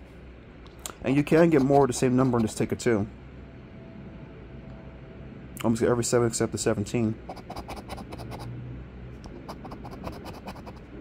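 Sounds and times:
coin scratching lottery ticket: 1.4 - 2.6, 7.3 - 8.5, 9.3 - 10.9.

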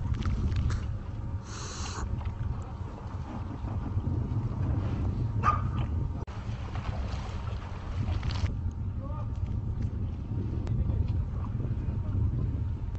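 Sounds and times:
wind rumble on microphone: 0.0 - 12.9.

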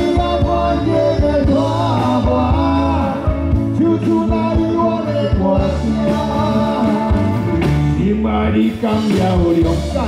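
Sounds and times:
bass: 0.0 - 10.0
live rock band playing: 0.0 - 10.0
steady drum beat: 0.0 - 10.0.

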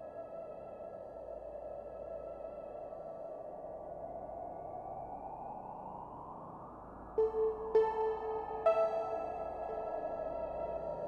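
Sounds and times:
ambient synthesizer chord: 7.2 - 11.0.

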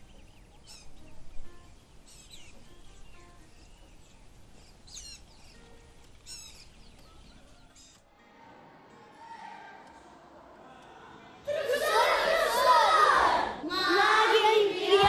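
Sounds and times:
birds chirping: 0.0 - 8.1
faint background noise: 0.0 - 15.0.

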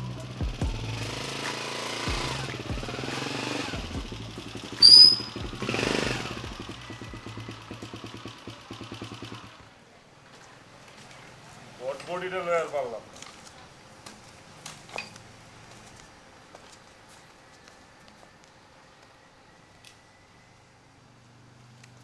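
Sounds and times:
music: 0.0 - 9.5
motorcycle engine running: 0.0 - 11.8
short high-pitched tone: 4.8 - 5.4.

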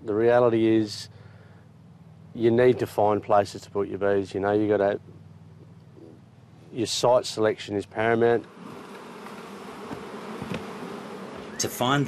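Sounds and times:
honeybees buzzing: 7.9 - 12.0.

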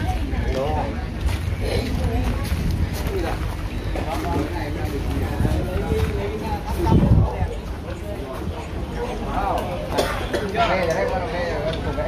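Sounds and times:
wind buffeting microphone: 0.0 - 9.2
indistinct background talk: 0.0 - 12.0.

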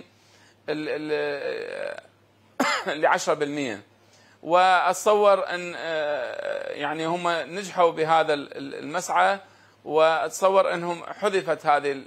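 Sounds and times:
man speaking: 0.7 - 12.0.

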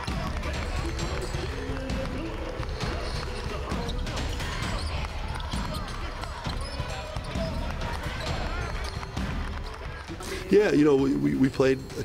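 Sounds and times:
basketball bouncing on court: 0.0 - 10.0
crowd talking and calling out: 0.0 - 12.0.

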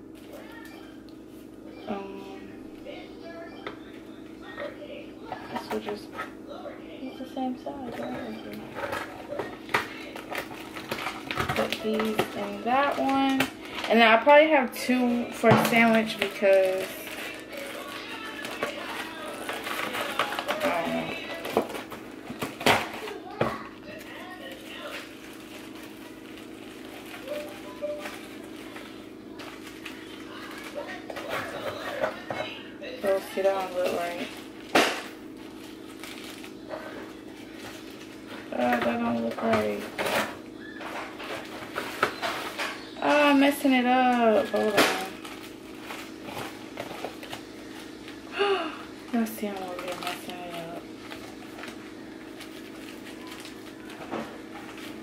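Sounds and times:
plastic bags being handled: 7.4 - 55.0.

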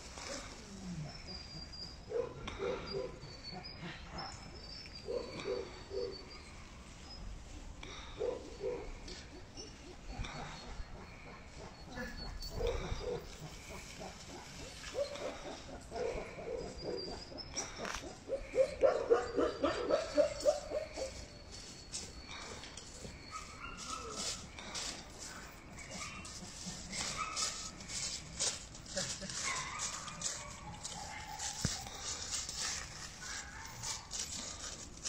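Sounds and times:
dogs barking deeply: 0.0 - 6.6, 7.9 - 21.5, 22.3 - 35.0.

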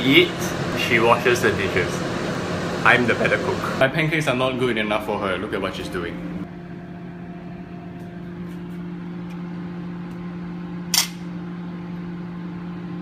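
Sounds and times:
appliance electrical hum: 0.0 - 13.0.

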